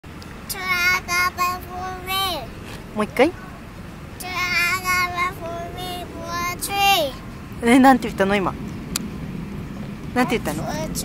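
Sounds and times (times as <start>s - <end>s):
young child singing: 0.5s - 2.6s, 4.2s - 7.2s.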